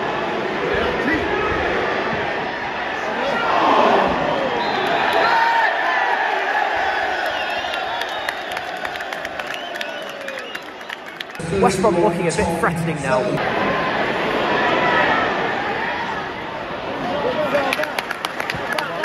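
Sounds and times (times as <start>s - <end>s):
stadium crowd shouting: 0.0s - 12.4s, 13.0s - 19.0s.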